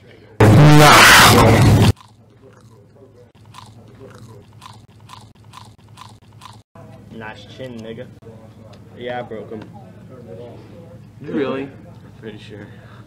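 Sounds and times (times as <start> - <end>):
distorted meme sound effect: 0.4 - 1.9.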